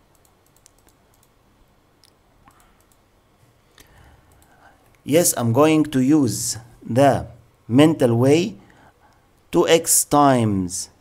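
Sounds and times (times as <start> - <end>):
faint clicks: 0.1 - 1.4, 2.0 - 3.1, 3.7 - 5.0.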